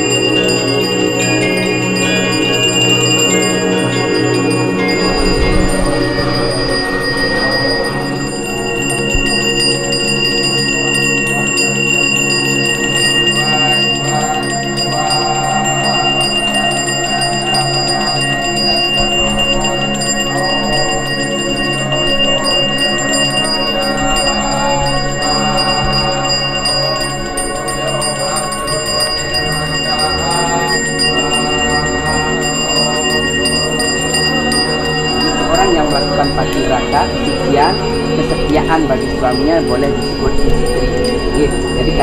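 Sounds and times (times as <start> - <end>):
background music: 0.0 - 42.0
hand bell ringing: 0.0 - 42.0.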